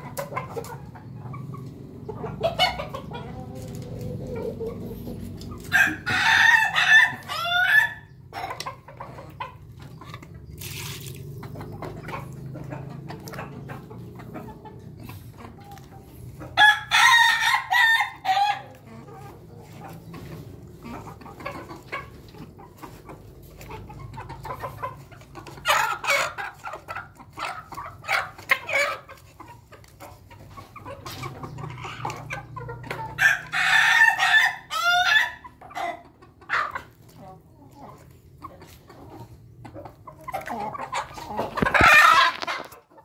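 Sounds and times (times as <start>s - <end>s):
chickens clucking: 0.0s - 43.0s
roosters crowing: 2.3s - 8.5s, 16.1s - 22.6s, 32.9s - 36.7s, 40.5s - 42.8s.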